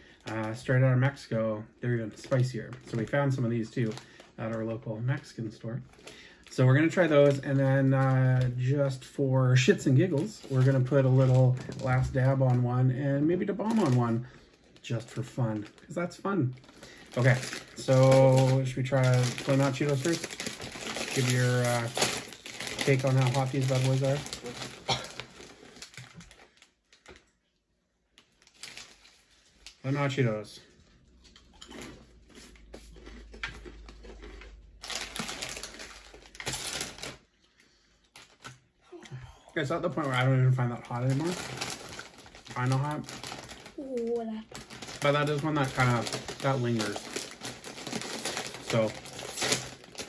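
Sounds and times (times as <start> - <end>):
plastic snack bag crinkling: 0.0 - 1.2, 1.9 - 27.4, 28.1 - 38.8, 39.6 - 50.0.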